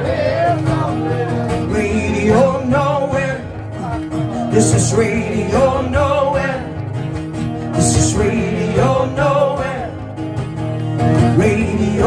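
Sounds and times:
strummed acoustic guitar: 0.0 - 12.0.

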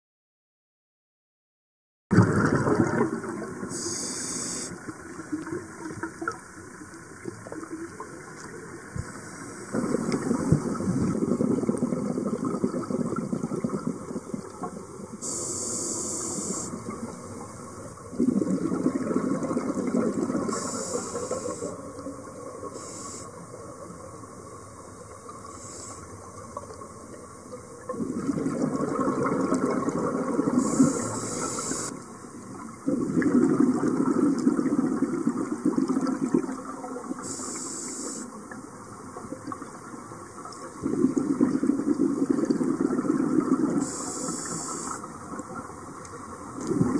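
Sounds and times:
bubbling exhaust underwater: 2.1 - 46.9
regulator inhalation hiss: 3.7 - 4.8, 15.2 - 16.8, 20.5 - 21.8, 22.8 - 23.4, 25.5 - 26.1, 30.6 - 31.9, 37.2 - 38.4, 43.8 - 45.1.

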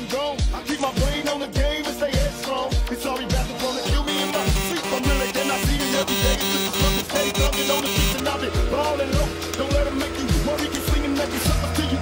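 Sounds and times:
sustained musical tones: 3.9 - 8.4.

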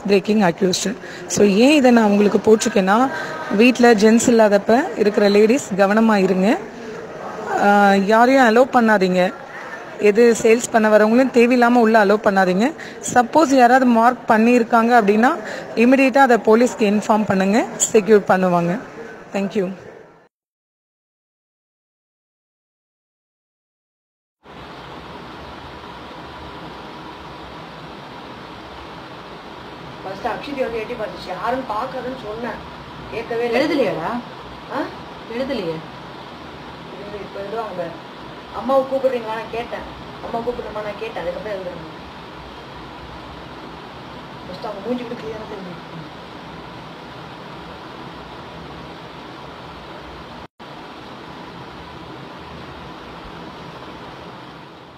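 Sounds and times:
steady hiss: 24.4 - 54.9.

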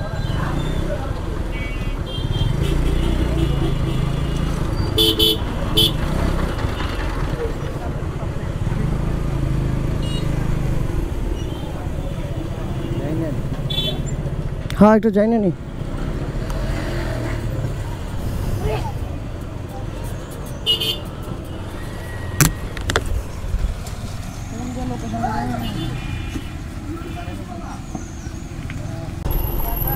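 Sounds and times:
street traffic: 0.0 - 29.9
vehicle horn tooting: 5.0 - 6.0.

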